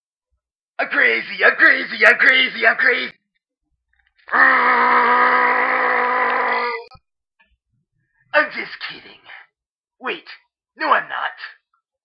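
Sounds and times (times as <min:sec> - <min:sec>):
long vocal cry: 0:04.3 - 0:06.9.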